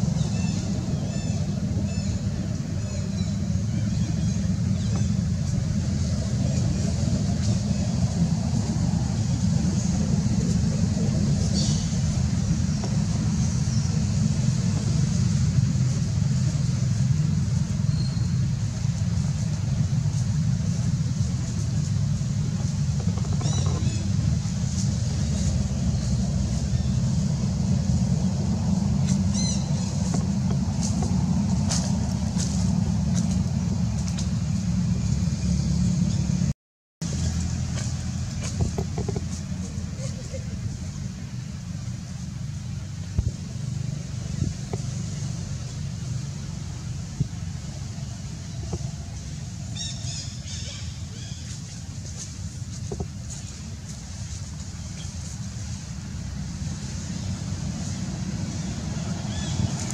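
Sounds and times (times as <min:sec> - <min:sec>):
steady low rumble: 0:00.0 - 0:59.9.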